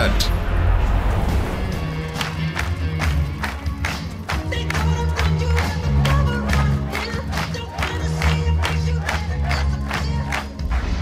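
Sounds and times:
film song playing: 0:00.0 - 0:11.0.

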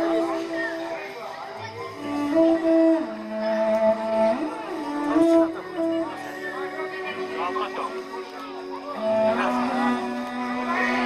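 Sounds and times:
bowed fiddle melody: 0:00.0 - 0:11.0.

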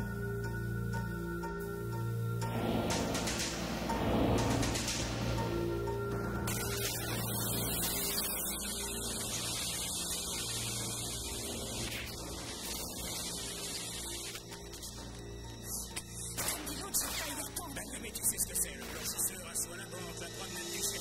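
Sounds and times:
tape hiss: 0:00.0 - 0:21.0
tense action film music: 0:00.0 - 0:21.0
low hum: 0:01.6 - 0:15.9
sharp hit: 0:02.4 - 0:09.5.

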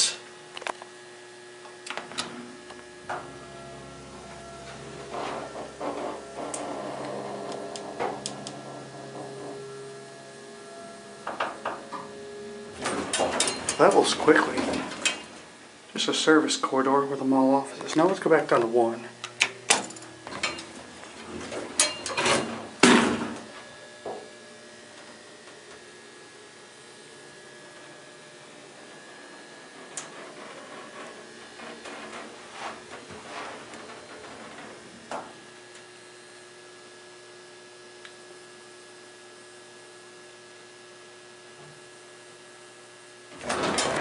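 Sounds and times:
elevator hum: 0:00.0 - 0:39.1, 0:40.6 - 0:44.0
elevator doors rattling open: 0:02.0 - 0:23.6, 0:25.1 - 0:35.7, 0:43.3 - 0:44.0.

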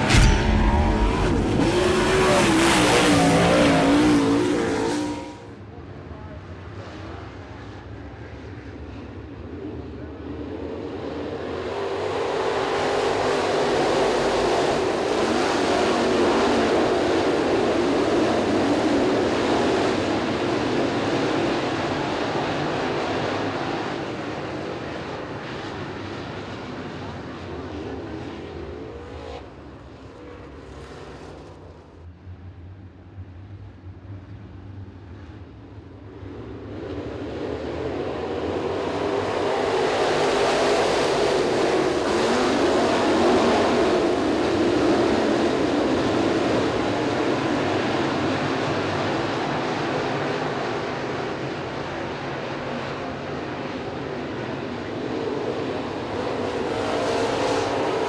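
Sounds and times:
whoosh: 0:00.0 - 0:05.5
race car engines at speed: 0:00.0 - 0:58.0.

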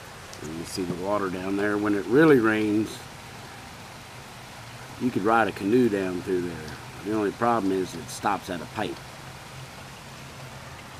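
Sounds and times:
steady rain hiss: 0:00.0 - 0:10.9.

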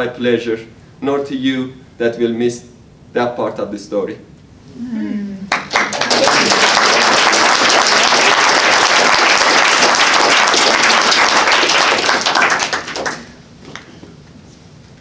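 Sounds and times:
audience applauding: 0:05.5 - 0:13.4.

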